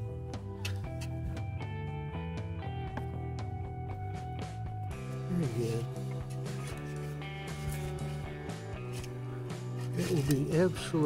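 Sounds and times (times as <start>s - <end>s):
background music with strummed guitar: 0.0s - 11.0s.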